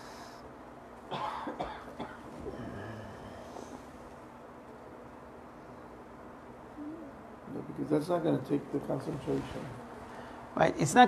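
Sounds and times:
man coughing: 1.1s - 2.2s.

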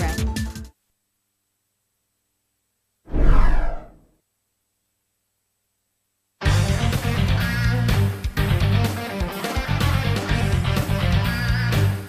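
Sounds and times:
whoosh with low rumble: 3.1s - 4.0s.

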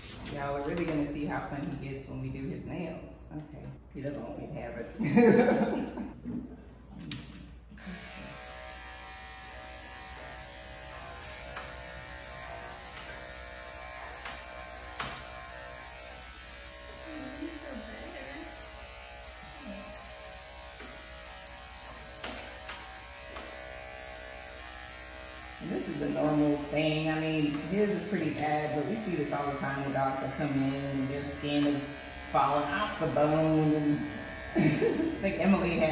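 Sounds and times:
electric clippers humming: 7.7s - 35.9s.

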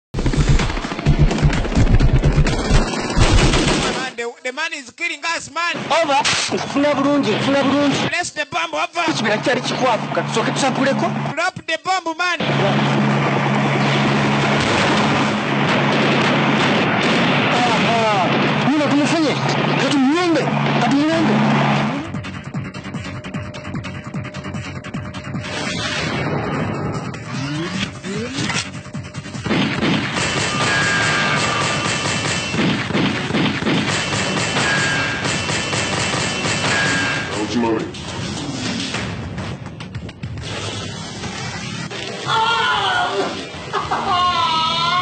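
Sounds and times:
helicopter roar: 0.2s - 4.1s, 9.0s - 11.4s, 12.4s - 42.2s
rapid automatic gunfire: 0.2s - 4.1s, 12.4s - 22.0s, 28.7s - 37.5s.

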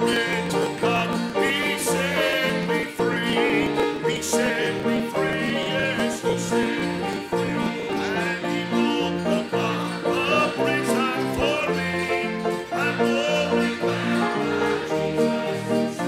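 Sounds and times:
acoustic string band music: 0.0s - 16.0s.

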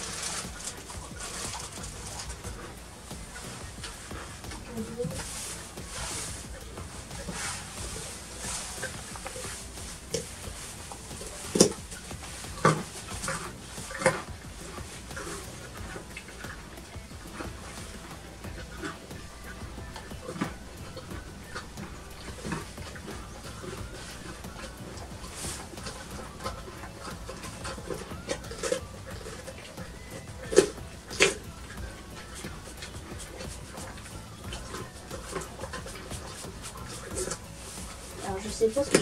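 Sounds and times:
grooming noises: 0.0s - 39.0s
pony munching hay: 0.0s - 39.0s
straw rustling: 0.0s - 39.0s.

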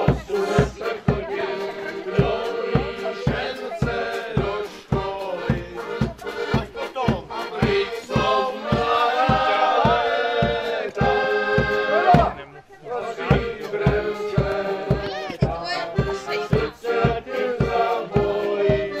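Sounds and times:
bass drum beating: 0.0s - 12.4s, 13.2s - 19.0s
voices singing: 0.0s - 19.0s.

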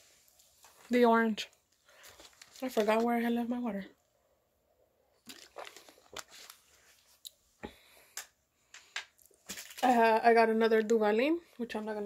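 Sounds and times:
plastic bottle crinkling: 1.8s - 3.3s, 5.2s - 7.4s, 8.2s - 10.2s.

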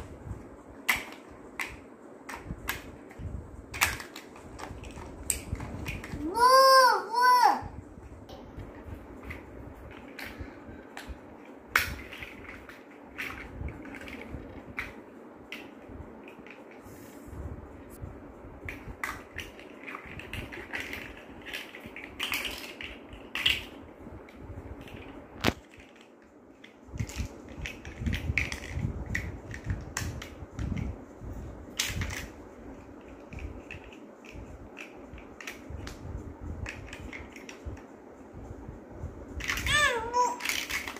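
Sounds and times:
plastic blocks clicking together: 3.7s - 6.2s, 11.7s - 16.7s, 18.7s - 23.8s, 24.8s - 30.4s, 31.7s - 32.4s, 39.4s - 40.9s.

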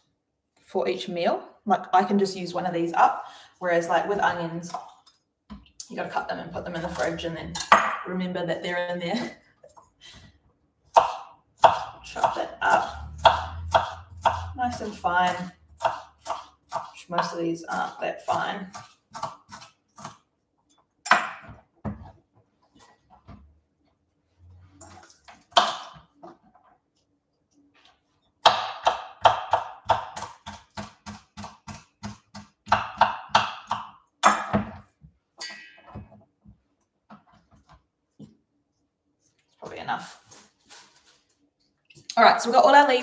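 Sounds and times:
knife chopping on wooden board: 10.9s - 14.5s, 15.8s - 17.9s, 28.4s - 34.8s.

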